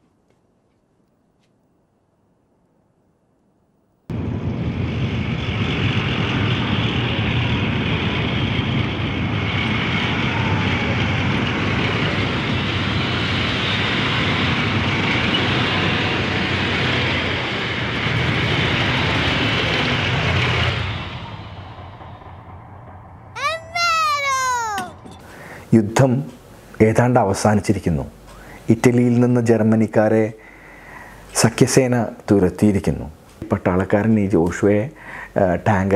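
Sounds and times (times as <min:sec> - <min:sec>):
child crying out excitedly: 0:23.4 - 0:25.1.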